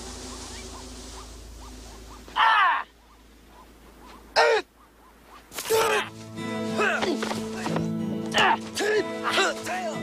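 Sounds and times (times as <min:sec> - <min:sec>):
steady hiss: 0:00.0 - 0:02.4.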